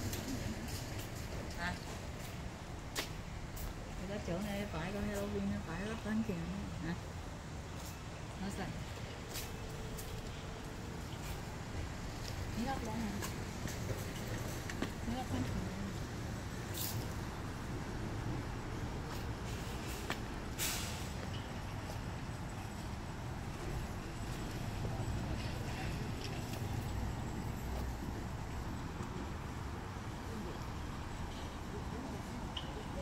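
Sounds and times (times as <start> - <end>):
low outdoor rumble: 0.0 - 33.0
short sharp hiss: 19.6 - 21.2.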